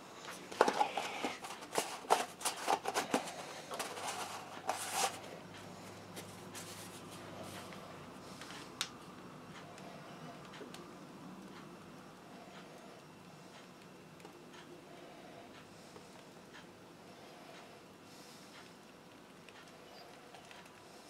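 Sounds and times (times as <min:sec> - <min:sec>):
plastic cup clicks and rattles: 0:00.6 - 0:05.2.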